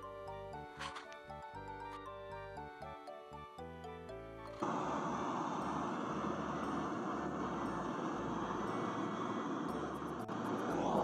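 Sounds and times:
blowtorch hissing: 4.6s - 11.0s.

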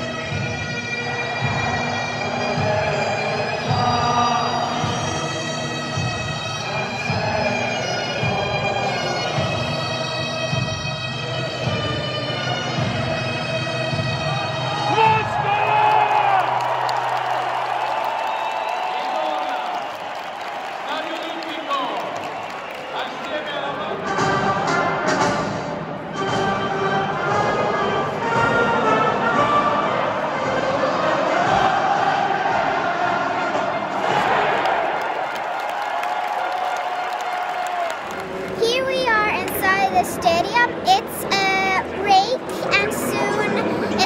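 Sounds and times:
stadium crowd singing: 1.0s - 9.9s, 27.1s - 35.3s
crowd noise: 37.3s - 44.0s
girl speaking into microphone: 38.6s - 44.0s.

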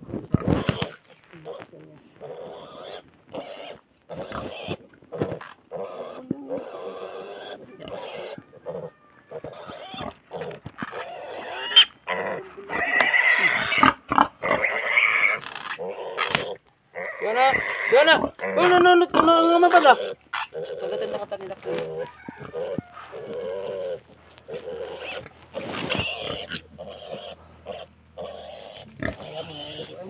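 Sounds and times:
pig grunting: 0.4s - 30.0s.

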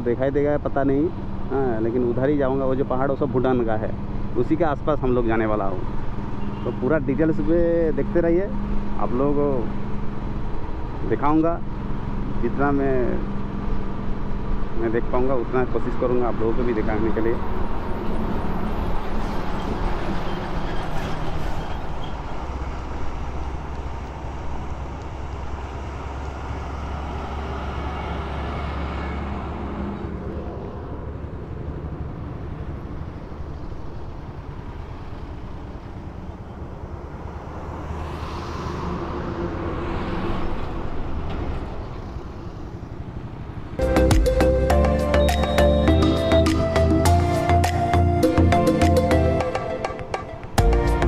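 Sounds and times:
passing traffic: 0.0s - 51.0s
wind and road noise: 0.0s - 51.0s.

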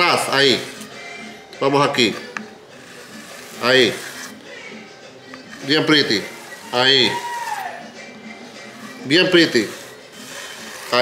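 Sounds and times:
soft background music: 0.0s - 11.0s
person speaking: 5.5s - 7.4s.

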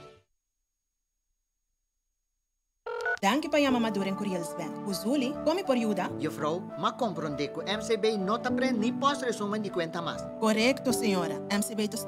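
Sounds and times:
telephone ringing: 2.9s - 3.4s
background music: 2.9s - 12.0s.

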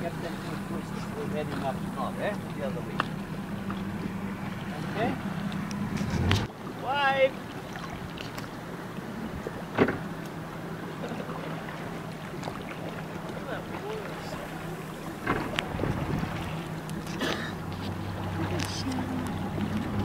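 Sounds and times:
motorboat engine humming: 0.0s - 20.0s.

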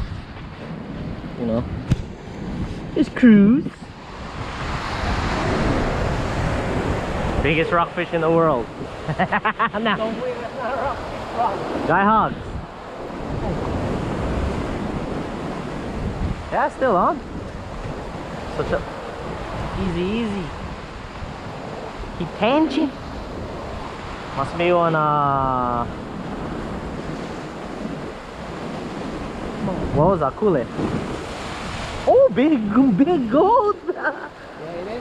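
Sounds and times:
ocean surf on rocks: 0.0s - 35.0s
wind buffeting microphone: 0.0s - 35.0s
waves breaking over rocks: 25.8s - 33.7s.

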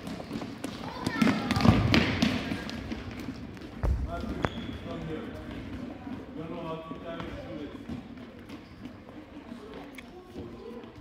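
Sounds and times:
children's voices: 0.8s - 2.0s
ball thumping on hardwood floor: 3.8s - 4.6s.

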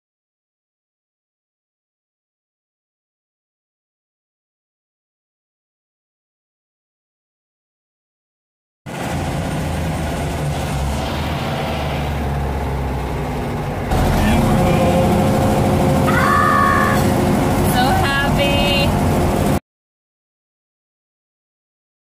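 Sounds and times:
car engine running: 8.9s - 19.6s.

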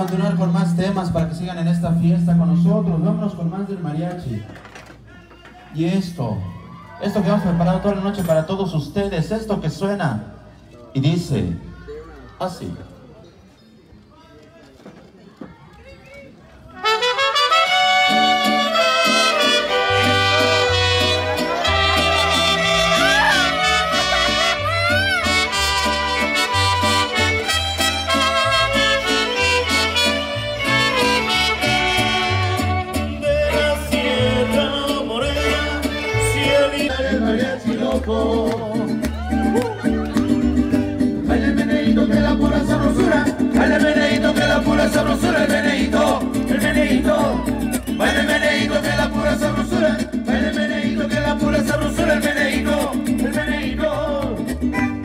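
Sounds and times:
mariachi band playing: 0.0s - 10.4s, 16.6s - 55.0s
person singing: 33.2s - 39.8s.

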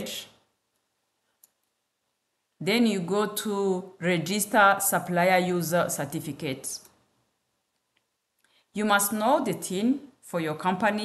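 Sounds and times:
person speaking: 0.0s - 0.6s, 2.6s - 7.0s, 8.7s - 11.0s.

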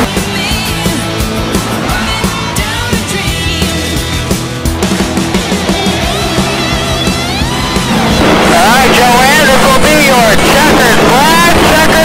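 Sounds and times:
race car engine drone: 0.0s - 12.0s.

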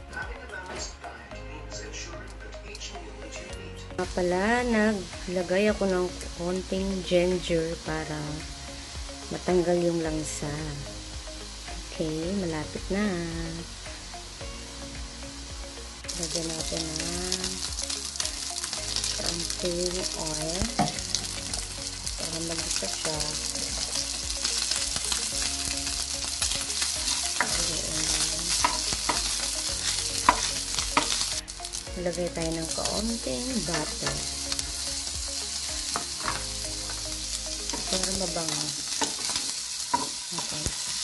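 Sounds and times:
meat sizzling in a frying pan: 4.0s - 41.0s.

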